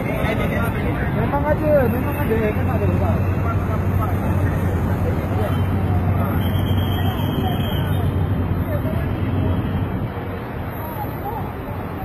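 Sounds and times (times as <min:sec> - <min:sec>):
people talking: 0:00.0 - 0:12.0
road traffic: 0:00.0 - 0:12.0.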